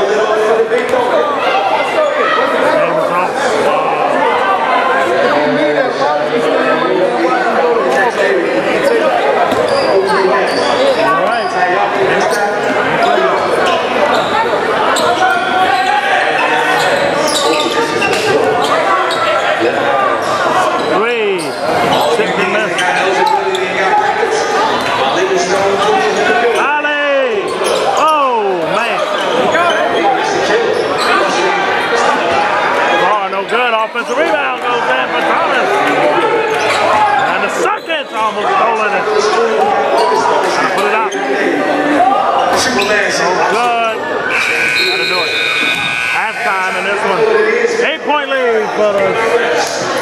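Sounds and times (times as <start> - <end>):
voices echoing in hall: 0.0 - 50.0.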